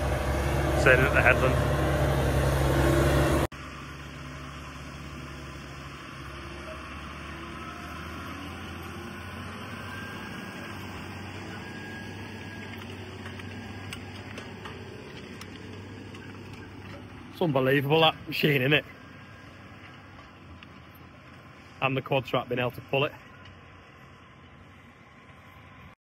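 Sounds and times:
tractor engine running under load: 0.0 - 26.0.

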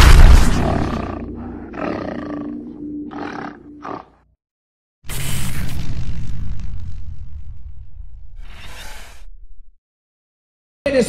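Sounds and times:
deep animal roar: 0.5 - 4.2.

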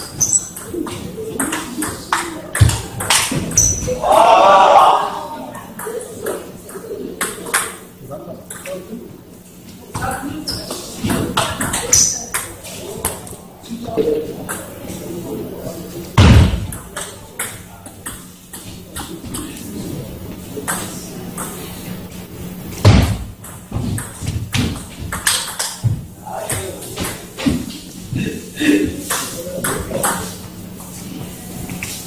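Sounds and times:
voices in reverberant hall: 0.0 - 32.0
loud thumps: 16.2 - 16.8, 22.8 - 24.8.

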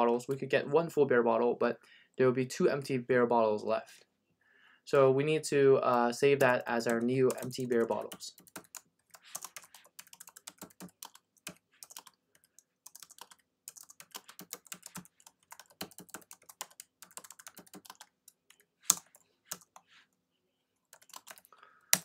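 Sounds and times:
computer keyboard typing: 6.4 - 19.9, 20.9 - 22.0.

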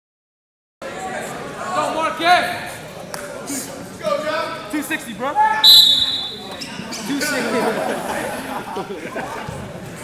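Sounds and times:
people talking and chattering: 0.8 - 10.0.

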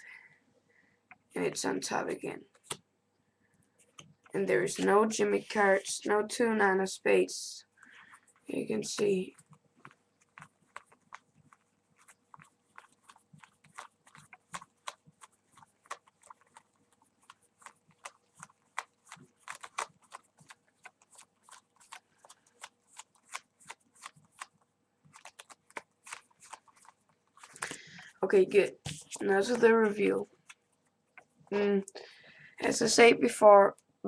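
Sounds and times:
playing cards clicking: 17.6 - 28.1.

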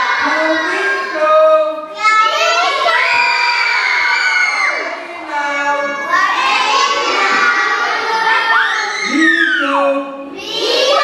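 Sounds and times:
young children shouting: 0.0 - 11.0.

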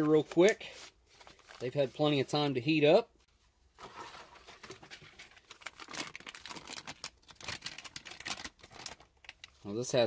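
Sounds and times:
plastic bag crinkling and rustling: 0.0 - 2.3, 3.8 - 9.6.

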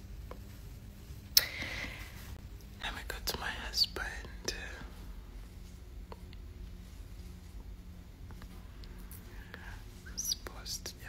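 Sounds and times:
faint steady hum: 0.0 - 11.0
person whispering: 2.8 - 5.0, 9.2 - 11.0.

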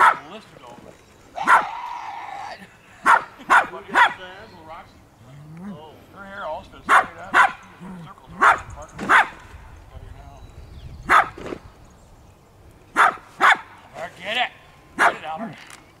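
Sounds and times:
small dog barking: 0.0 - 0.3, 1.4 - 1.8, 3.0 - 4.2, 6.9 - 7.7, 8.3 - 9.4, 11.1 - 11.4, 13.0 - 13.8, 15.0 - 15.3.

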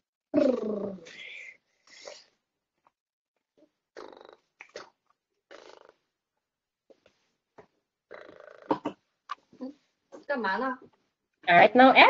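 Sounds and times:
person making rattling vocal noises: 0.3 - 2.3, 3.9 - 6.0, 8.1 - 9.7.

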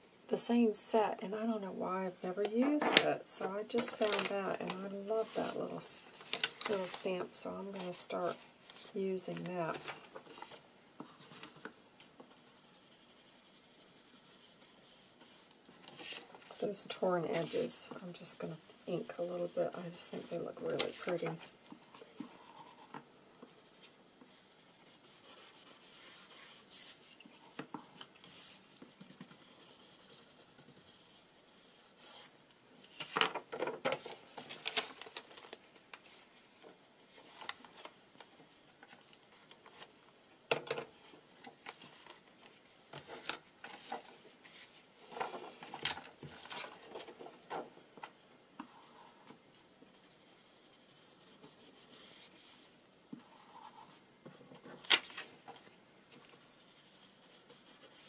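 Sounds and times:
ink pad scraping paper: 3.6 - 6.0, 12.4 - 21.5, 22.3 - 22.9
paper rustling: 3.7 - 12.6, 13.3 - 40.0, 41.0 - 58.0.

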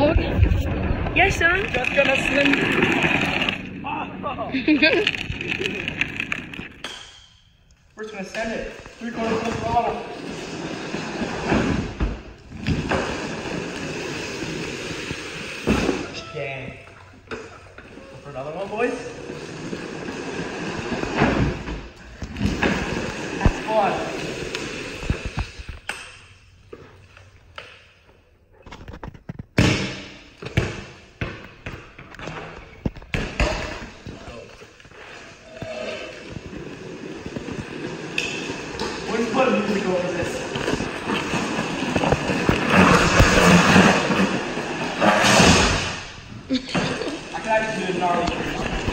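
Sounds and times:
plastic wheels rolling on concrete: 0.0 - 6.9, 7.8 - 16.2, 17.0 - 25.9, 31.5 - 48.9
indistinct voices: 35.2 - 36.6.

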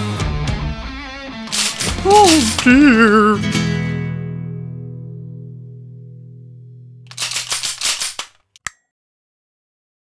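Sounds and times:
guns being cocked: 1.5 - 2.7, 7.1 - 8.5.

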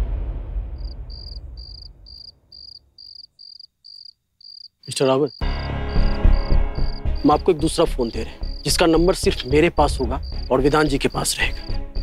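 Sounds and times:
low rumble: 0.0 - 2.5
crickets chirping: 0.8 - 12.0.

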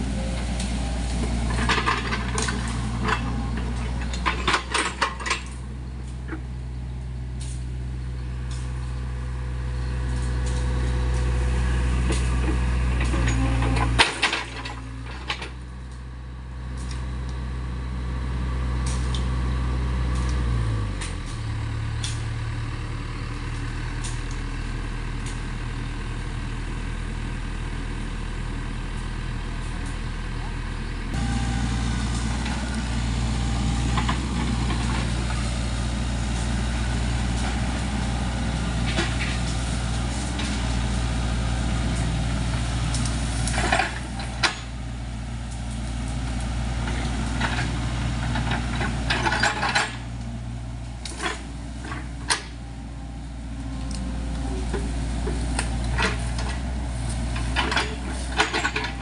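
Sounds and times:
excavator diesel engine running: 0.0 - 59.0.

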